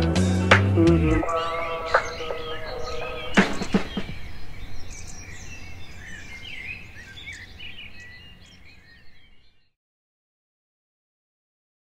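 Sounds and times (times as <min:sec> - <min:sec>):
birds chirping: 0:00.0 - 0:09.8.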